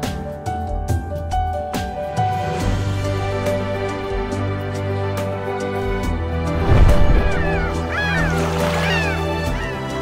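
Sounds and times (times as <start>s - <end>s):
background music: 0.0s - 10.0s
falling bird calls: 6.7s - 10.0s.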